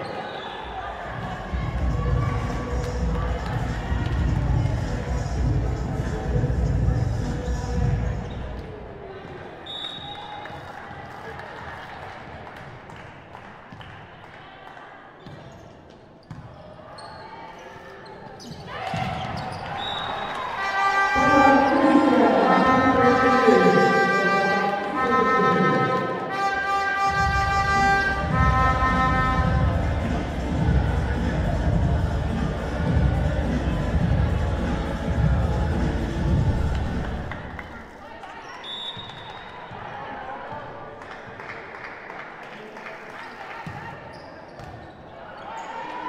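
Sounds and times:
voices in sports hall: 0.0s - 46.0s
low beats: 21.2s - 37.4s.

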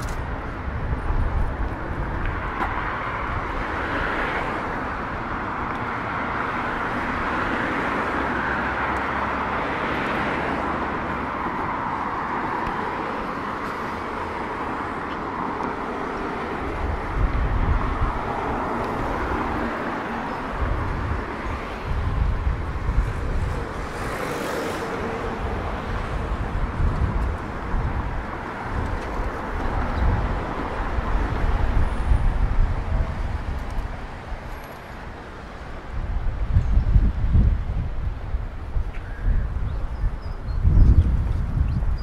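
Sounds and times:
road traffic passing: 0.0s - 42.0s.

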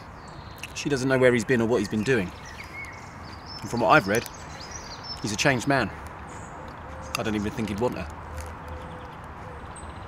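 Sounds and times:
faint bird calls: 1.8s - 10.0s.

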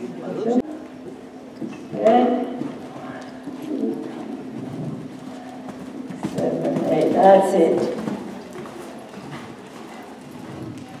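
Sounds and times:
horse hoofbeats on sand: 1.9s - 11.0s.

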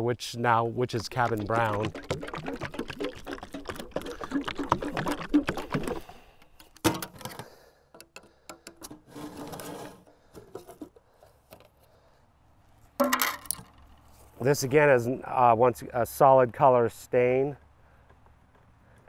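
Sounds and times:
paint can shaken rattling: 0.9s - 6.7s
metal paint cans clicking: 1.0s - 9.1s, 13.0s - 14.0s.

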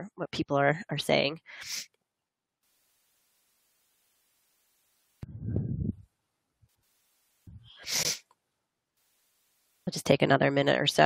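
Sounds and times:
person sneezing: 7.8s - 8.2s.

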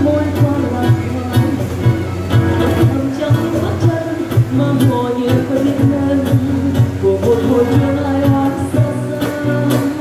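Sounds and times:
acoustic guitar ballad: 0.0s - 10.0s.

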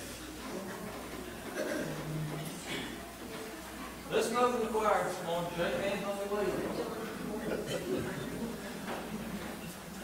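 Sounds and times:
quiet chatter of voices: 0.0s - 10.0s.

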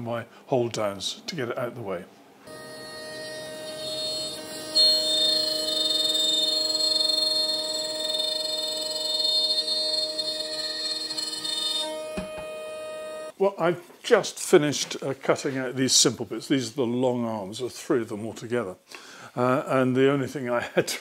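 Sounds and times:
router spindle whining while cutting wood: 2.5s - 13.3s.

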